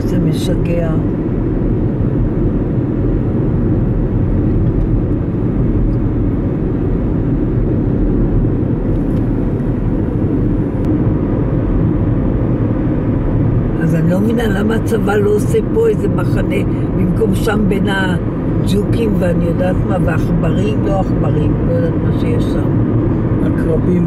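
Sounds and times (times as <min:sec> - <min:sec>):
car interior road rumble: 0:00.0 - 0:24.0.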